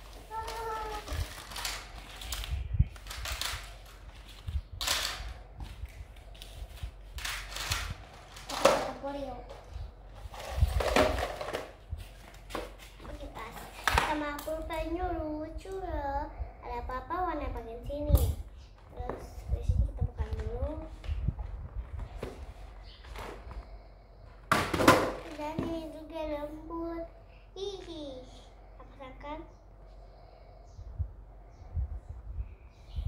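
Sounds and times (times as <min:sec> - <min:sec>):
young girl's voice: 0:00.0 - 0:01.8, 0:08.4 - 0:09.9, 0:13.0 - 0:21.1, 0:25.2 - 0:29.6.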